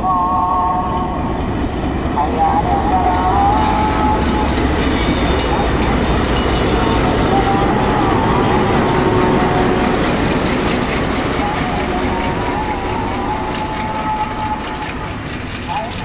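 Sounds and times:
diesel locomotive engine rumble: 0.0s - 16.0s
train coaches rolling by: 0.0s - 16.0s.

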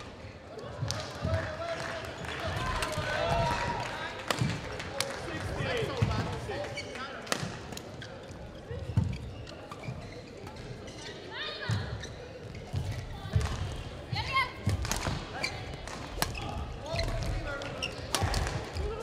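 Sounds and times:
shoes squeaking on floor: 7.8s - 13.4s, 15.3s - 18.1s.

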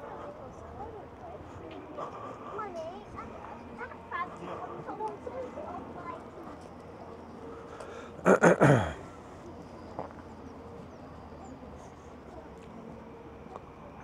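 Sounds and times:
passers-by talking: 0.0s - 14.0s.

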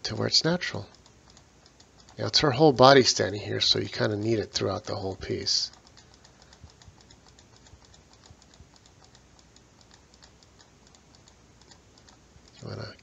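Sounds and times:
low room noise: 0.0s - 13.0s
computer mouse clicking: 0.1s - 13.0s.

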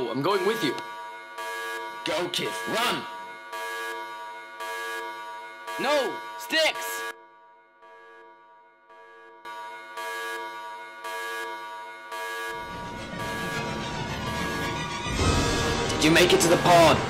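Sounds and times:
horn-like alarm pulses: 0.0s - 17.0s
held musical drone: 12.6s - 17.0s.

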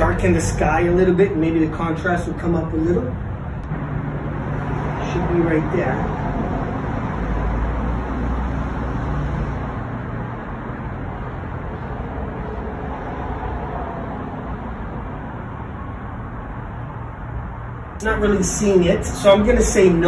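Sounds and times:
road traffic noise: 0.0s - 20.0s
vehicle passing: 0.0s - 20.0s.

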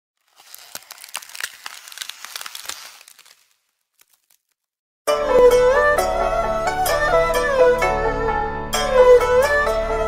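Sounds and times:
dense crackling clicks and rustles: 0.2s - 4.8s.

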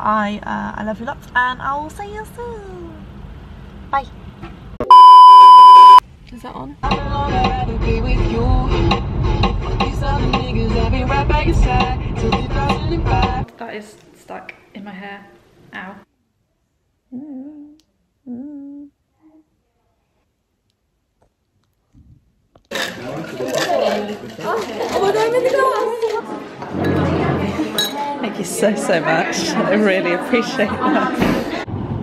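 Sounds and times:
censor bleep tone: 4.8s - 6.0s
woman humming: 17.1s - 19.5s.

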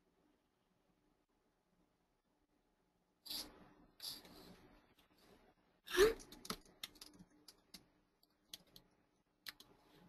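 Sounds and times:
computer keys clicking: 6.2s - 9.7s.

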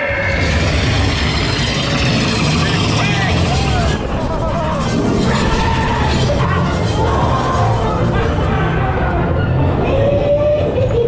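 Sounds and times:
indistinct voices: 0.0s - 11.0s
loud rumbling of ride car: 0.0s - 11.0s.

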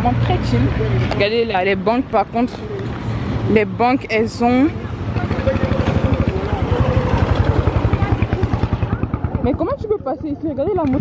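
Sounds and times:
small motorcycle engine passing: 2.0s - 11.0s.

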